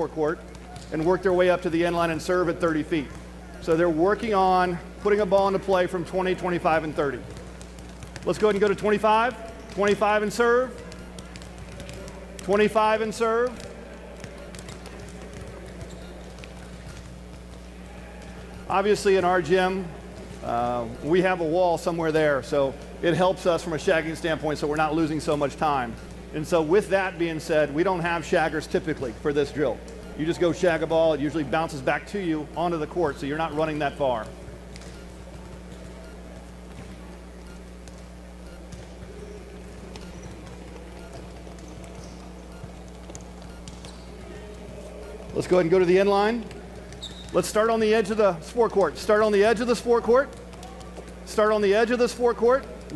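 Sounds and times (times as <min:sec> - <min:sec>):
distant chatter: 0:00.0 - 0:21.5, 0:22.2 - 0:52.9
players' footsteps: 0:00.0 - 0:52.9
steady low hum: 0:00.0 - 0:52.9
volleyballs bouncing: 0:00.0 - 0:52.9.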